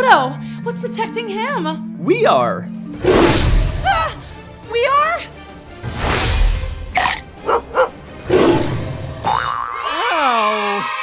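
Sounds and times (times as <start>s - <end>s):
background music: 0.0s - 11.0s
small dog barking: 7.5s - 7.9s.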